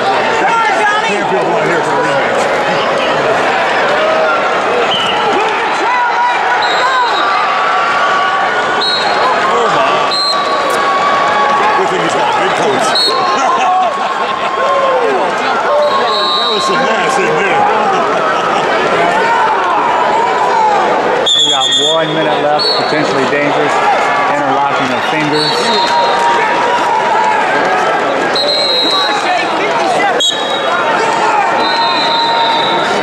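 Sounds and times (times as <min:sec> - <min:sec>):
crowd shouting: 0:00.0 - 0:33.0
referee's whistle: 0:04.9 - 0:05.4, 0:06.5 - 0:07.4, 0:08.8 - 0:09.3, 0:10.0 - 0:10.8, 0:12.8 - 0:13.4, 0:15.8 - 0:16.9, 0:21.2 - 0:23.1, 0:24.9 - 0:26.2, 0:28.3 - 0:30.8, 0:31.5 - 0:33.0
short high whistle blasts: 0:31.6 - 0:32.9.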